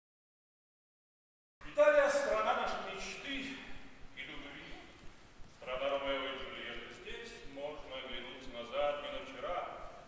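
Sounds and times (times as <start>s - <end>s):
man reading aloud: 1.6s - 5.0s, 5.6s - 10.0s.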